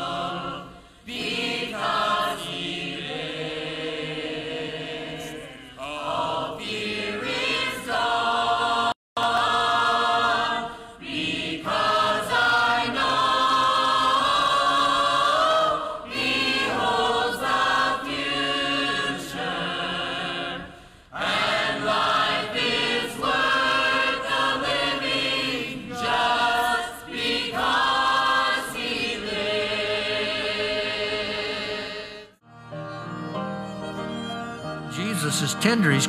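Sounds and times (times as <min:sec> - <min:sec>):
mixed church choir singing: 0:00.0 - 0:33.2.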